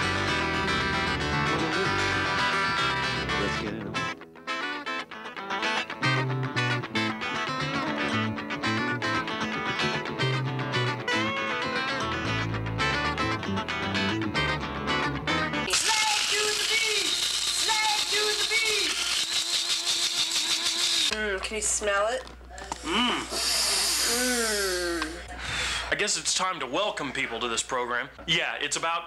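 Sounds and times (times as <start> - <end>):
upbeat guitar music: 0.0 - 21.1
voices: 15.7 - 19.1
coffee grinder whirring: 15.7 - 21.1.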